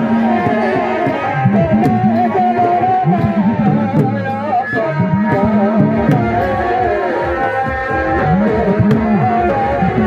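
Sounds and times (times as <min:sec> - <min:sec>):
hand drums beaten fast: 0:00.0 - 0:10.0
wind instrument wavering melody: 0:00.0 - 0:10.0.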